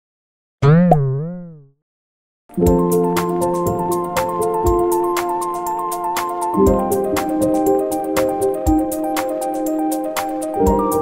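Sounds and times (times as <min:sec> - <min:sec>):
cartoon boing sound effect: 0:00.6 - 0:01.7.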